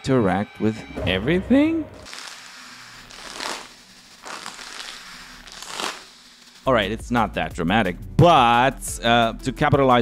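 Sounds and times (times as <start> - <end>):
paper bag crinkling: 2.0 - 6.2.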